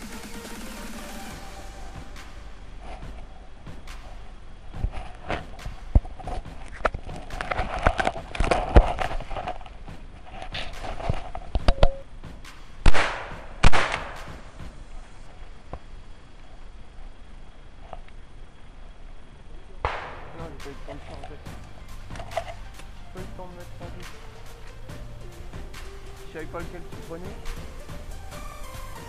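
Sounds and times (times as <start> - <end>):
twigs and branches snapping: 4.8 - 11.7
shotgun shots: 12.8 - 14.7, 19.8 - 21.0.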